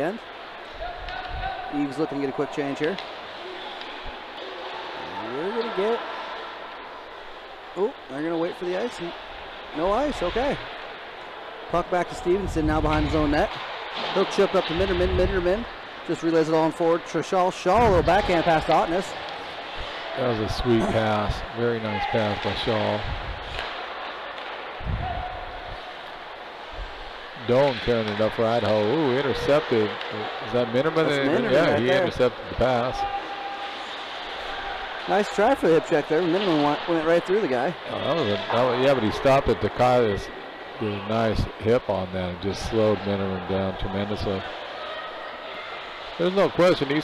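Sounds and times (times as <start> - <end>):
hiss of play on ice: 33.2 - 35.0.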